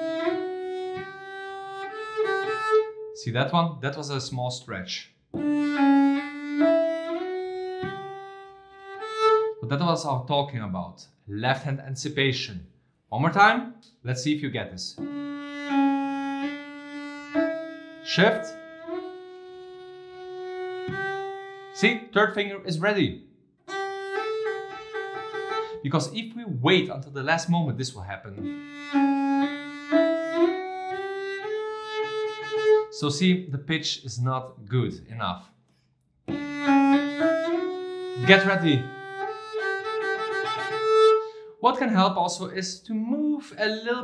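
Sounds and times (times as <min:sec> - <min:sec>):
bowed cello notes: 0:00.0 - 0:03.1, 0:05.3 - 0:09.6, 0:15.0 - 0:23.0, 0:23.7 - 0:27.2, 0:28.3 - 0:33.1, 0:36.3 - 0:41.5.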